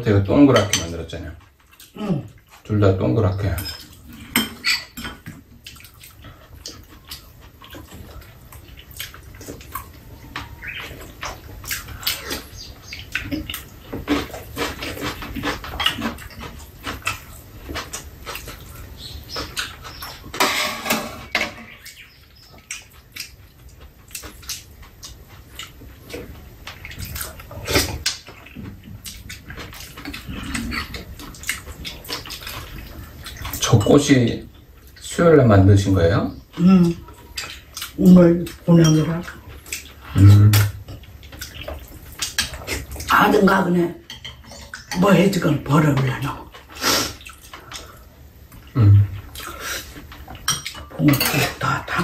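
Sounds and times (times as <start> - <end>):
metal spoons clicking on bowls: 50.4 - 51.8.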